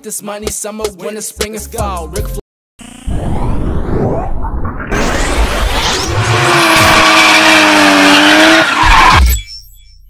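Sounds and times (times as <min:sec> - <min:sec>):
car tyres squealing: 0:05.9 - 0:09.3.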